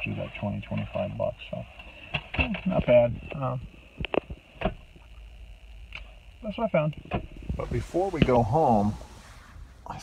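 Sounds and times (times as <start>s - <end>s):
low rumble in car cabin: 0.0s - 10.0s.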